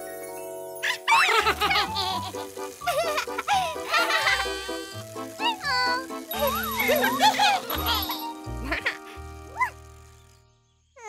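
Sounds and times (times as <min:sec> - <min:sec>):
cartoon background music: 0:00.0 - 0:10.4
high-pitched cartoon voices squealing: 0:00.8 - 0:02.0.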